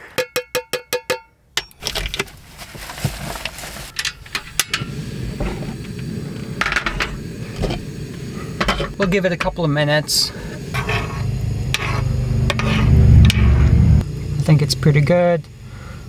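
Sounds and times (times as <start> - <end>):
metal cookware clinking: 0.2 - 2.2, 8.6 - 9.6, 10.8 - 13.5
gas burner rushing: 3.8 - 16.0.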